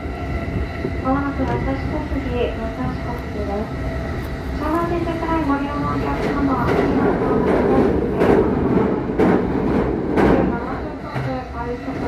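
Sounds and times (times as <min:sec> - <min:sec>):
passing train rushing and clattering: 0:00.0 - 0:12.0
train running from inside carriage: 0:00.0 - 0:12.0.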